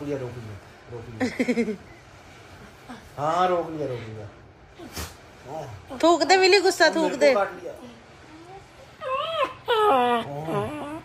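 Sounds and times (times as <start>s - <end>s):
dog whining: 8.3s - 11.0s.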